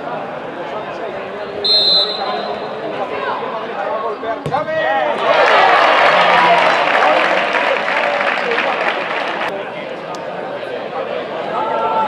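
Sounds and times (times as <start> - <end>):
referee whistle blast: 1.6 - 2.8
crowd shouting and cheering: 1.6 - 9.5.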